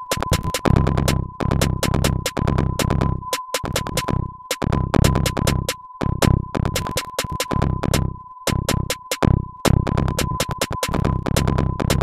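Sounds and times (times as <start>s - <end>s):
sharp clicky drum hits: 0.1s - 0.7s
deep kick drums: 0.2s - 6.8s, 7.5s - 12.0s.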